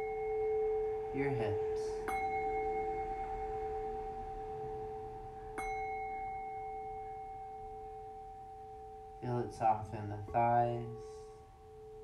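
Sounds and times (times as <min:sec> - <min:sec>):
singing bowl ringing: 0:00.0 - 0:12.0.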